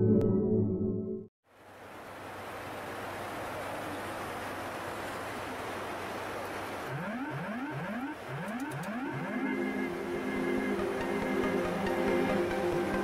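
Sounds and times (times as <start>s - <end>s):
background music with rising swoops: 7.1s - 13.0s.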